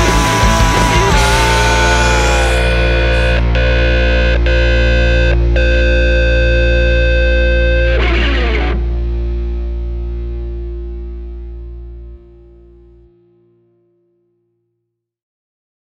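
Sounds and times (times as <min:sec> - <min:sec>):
distorted electric guitar chord: 0:00.0 - 0:12.6.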